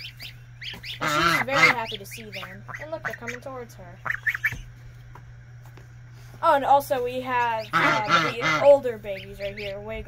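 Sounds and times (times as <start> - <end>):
goslings peeping: 0.0 - 4.8, 7.2 - 10.0
low steady hum: 0.0 - 10.0.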